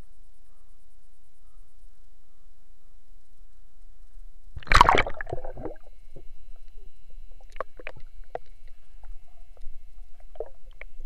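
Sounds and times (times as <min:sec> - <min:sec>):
faint steady whine: 0:00.0 - 0:11.0
bubbles gurgling underwater: 0:04.6 - 0:06.3
clicks and crackles in water: 0:07.4 - 0:11.0.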